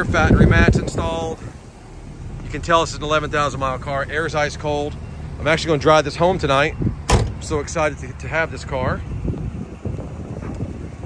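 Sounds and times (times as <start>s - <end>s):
wind blowing across microphone: 0.0s - 3.6s, 6.2s - 11.0s.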